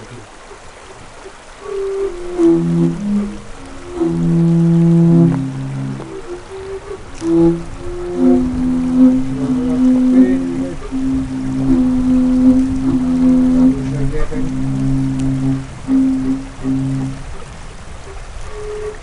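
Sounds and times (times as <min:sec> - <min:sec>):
wind instruments low held notes: 0:00.0 - 0:19.0.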